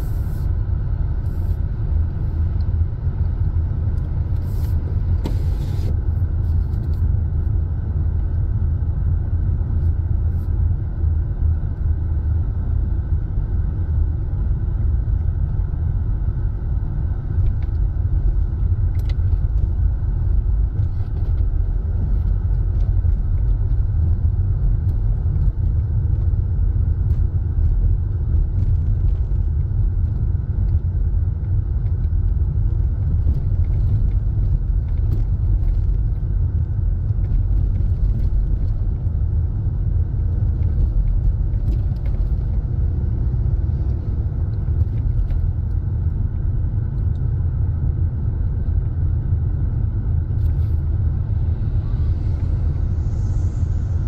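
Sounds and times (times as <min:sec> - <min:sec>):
car driving rumble: 0:00.0 - 0:54.0.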